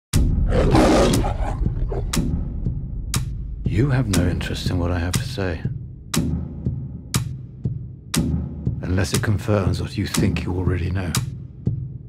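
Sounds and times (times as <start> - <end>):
lion roaring: 0.4 - 2.3.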